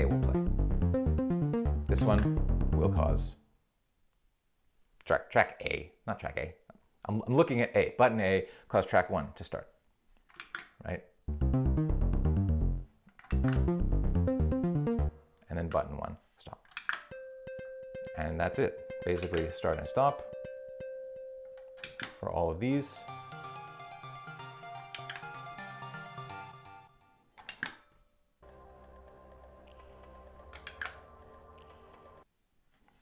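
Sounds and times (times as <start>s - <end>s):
synth bass riff: 0.0s - 3.3s, 11.3s - 15.2s
lower steady loop: 0.0s - 3.4s, 11.2s - 15.4s, 17.1s - 26.9s
melodic loop of held notes: 0.0s - 3.4s, 11.3s - 15.3s, 17.1s - 27.2s.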